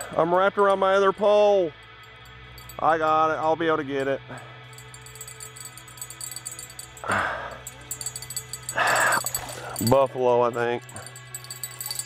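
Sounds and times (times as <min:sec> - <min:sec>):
man's voice: 0:09.7 - 0:11.0.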